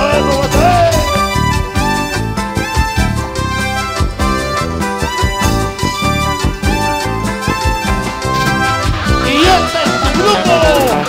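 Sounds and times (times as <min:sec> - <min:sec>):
bass: 0:00.0 - 0:11.0
drum kit beat: 0:00.0 - 0:11.0
sliding melodic lead line: 0:00.0 - 0:11.0.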